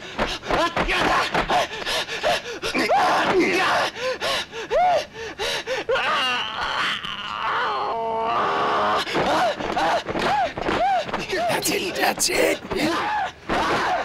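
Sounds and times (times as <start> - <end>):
fighters grunting and shouting: 11.4 - 13.2.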